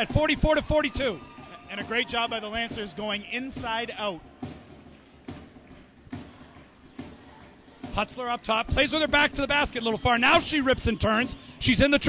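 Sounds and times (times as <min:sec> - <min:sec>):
faint arena noise: 0:00.0 - 0:12.0
basketball dribbling on hardwood: 0:02.6 - 0:09.4.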